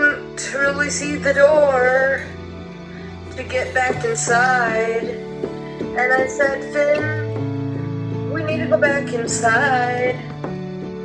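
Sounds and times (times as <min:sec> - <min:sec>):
electronic keyboard chords: 0:02.7 - 0:08.8.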